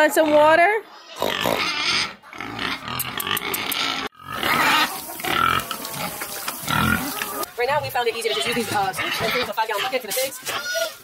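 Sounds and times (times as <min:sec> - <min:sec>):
pigs grunting: 0:00.0 - 0:11.0.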